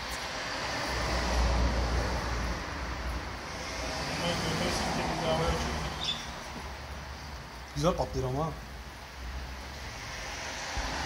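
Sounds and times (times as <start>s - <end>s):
road traffic hum: 0.0s - 11.0s.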